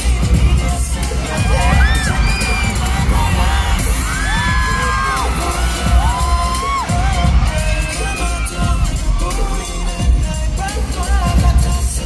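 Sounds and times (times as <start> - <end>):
crowd cheering: 0.0 - 11.3
pop dance track with heavy bass: 0.0 - 12.0
high-pitched screams: 1.2 - 10.0.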